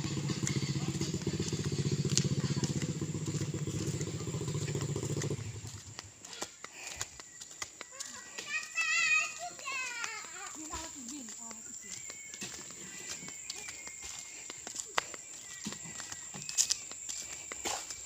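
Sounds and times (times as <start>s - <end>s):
child calling out: 8.2s - 10.5s.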